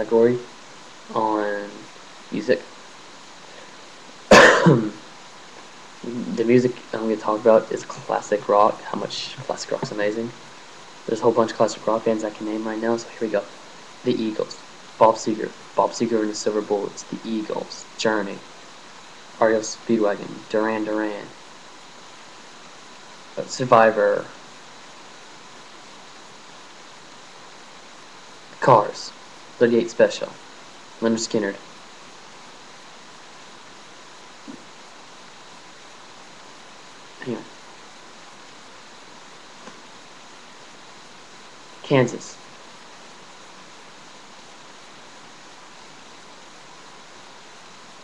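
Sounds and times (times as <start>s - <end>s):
faint steady tone: 0.0s - 48.0s
steady background hiss: 0.0s - 48.0s.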